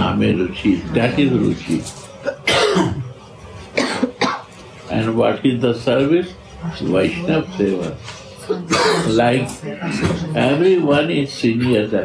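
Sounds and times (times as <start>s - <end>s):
man coughing: 2.2s - 3.2s, 3.8s - 4.5s, 8.7s - 9.2s.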